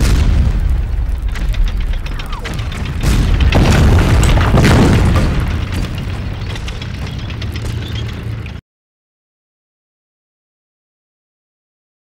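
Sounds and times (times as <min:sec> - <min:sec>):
explosion blasts with rumble: 0:00.0 - 0:08.6.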